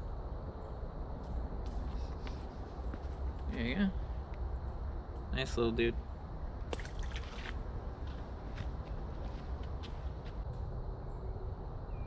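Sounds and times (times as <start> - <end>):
steady low rumble: 0.0 - 12.0
footsteps on rocks: 7.1 - 10.4.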